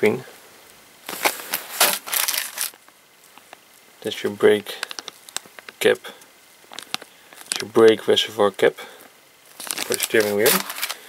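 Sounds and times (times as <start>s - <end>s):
plastic bag crinkling: 1.0s - 2.9s, 4.7s - 5.7s, 6.6s - 8.0s, 9.5s - 11.0s.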